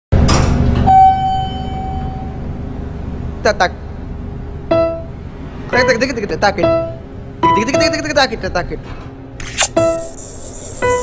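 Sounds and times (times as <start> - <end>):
elevator chime: 0.8 - 2.5.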